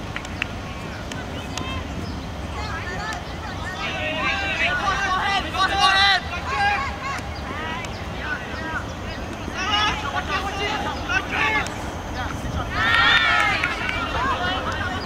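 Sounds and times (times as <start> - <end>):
players shouting calls: 0.2 - 15.0.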